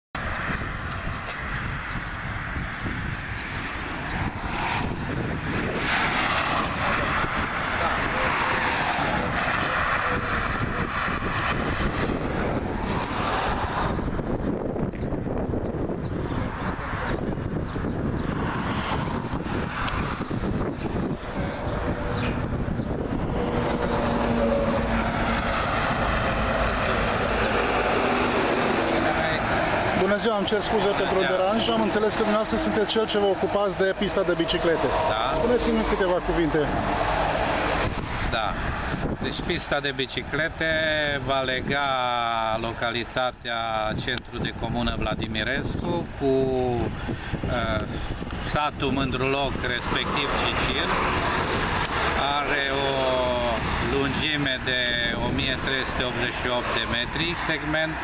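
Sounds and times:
cars and lorries passing: 0.2s - 58.0s
low traffic rumble: 0.2s - 58.0s
wind on microphone: 0.2s - 58.0s.

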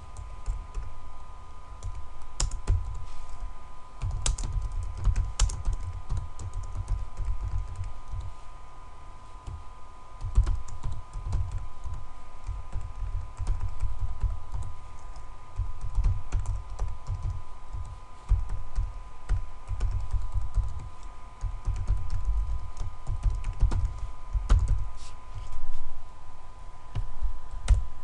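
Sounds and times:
faint steady whine: 0.0s - 28.0s
typing on keyboard: 1.8s - 3.0s, 4.0s - 8.3s, 10.2s - 24.8s.

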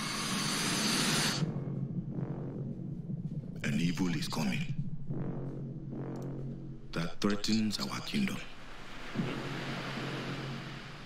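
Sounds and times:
steady rushing noise: 8.5s - 11.0s.

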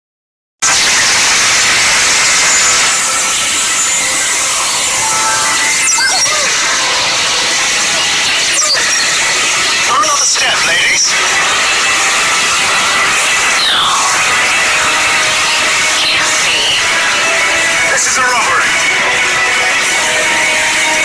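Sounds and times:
music: 0.6s - 21.0s.

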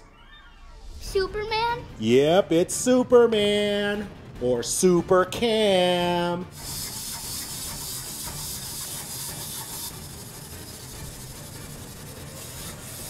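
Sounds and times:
toy mechanism whirring: 6.5s - 13.0s.

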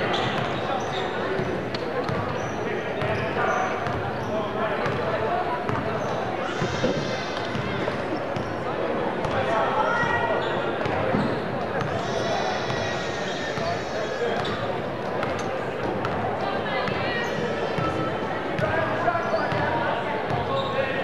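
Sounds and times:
murmur of voices: 0.0s - 21.0s.

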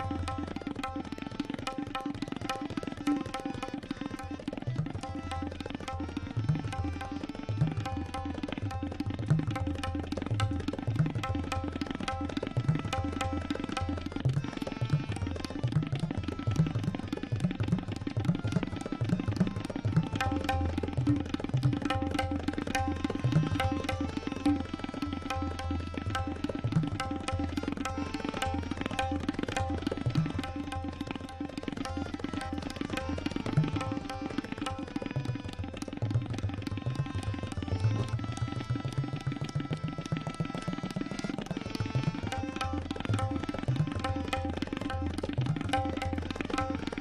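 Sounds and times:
harmonium melody: 0.0s - 47.0s
tabla drumming: 0.0s - 47.0s.

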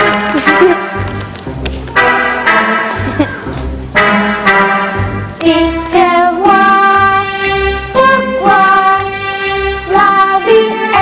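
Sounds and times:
orchestral brass chords: 0.0s - 11.0s.

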